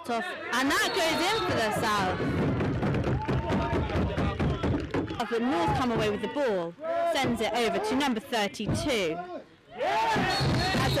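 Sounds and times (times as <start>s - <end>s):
rumbling crowd background: 0.0s - 11.0s
excited voices shouting: 0.2s - 2.6s, 9.7s - 11.0s.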